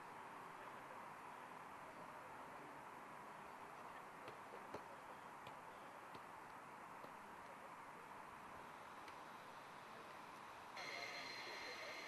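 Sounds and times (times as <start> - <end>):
high-pitched whine: 10.8 - 12.0.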